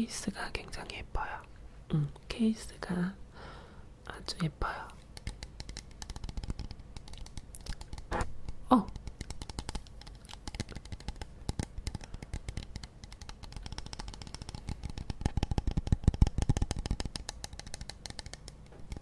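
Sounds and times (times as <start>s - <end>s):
fingernails tapping on plastic bottle: 5.1s - 19.0s.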